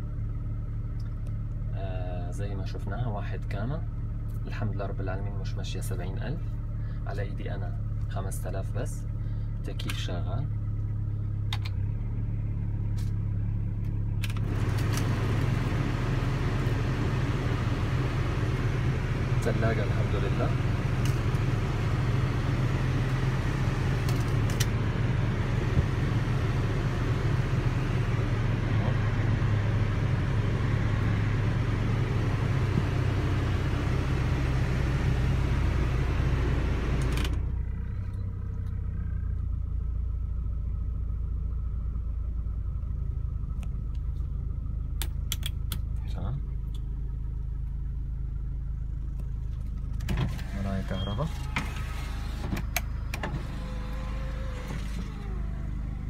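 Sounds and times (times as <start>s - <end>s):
car engine idling: 0.0s - 56.0s
power window motor whine: 14.2s - 17.7s, 49.8s - 56.0s
air conditioning blower rushing: 50.0s - 56.0s.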